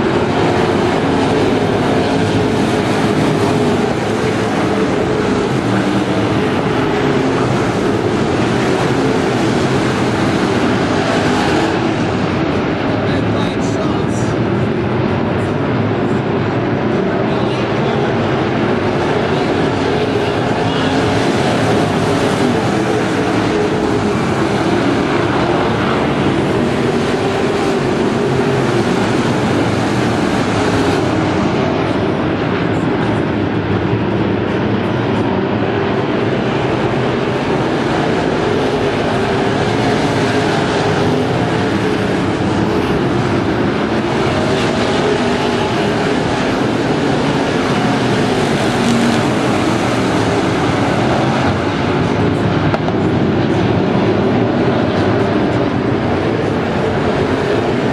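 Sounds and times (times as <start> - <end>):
race car engines: 0.0 - 57.9.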